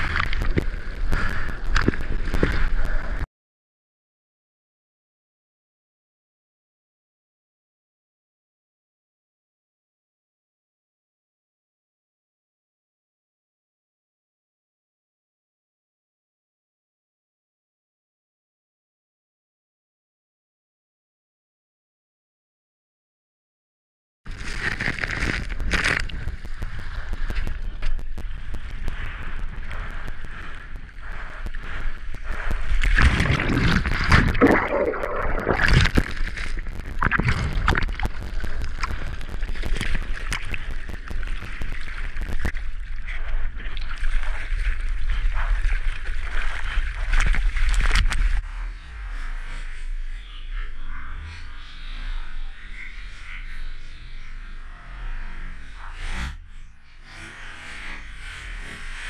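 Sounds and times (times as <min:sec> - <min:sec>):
wind buffeting on microphone: 0:24.3 - 0:48.4
surf water rushing and splashing: 0:33.0 - 0:42.1.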